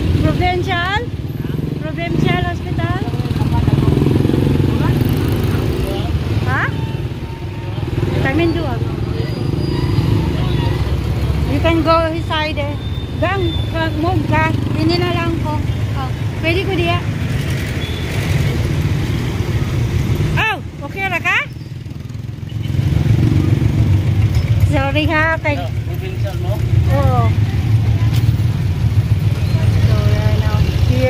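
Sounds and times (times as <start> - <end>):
voices: 0.0 - 18.8, 19.4 - 31.0
motorcycle engine rumbling: 0.0 - 31.0
street traffic: 0.0 - 31.0.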